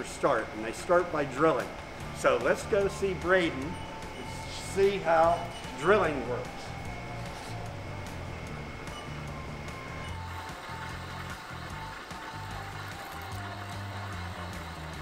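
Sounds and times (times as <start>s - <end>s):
held high tone: 2.8s - 10.2s
music with stepping bass line: 6.6s - 15.0s.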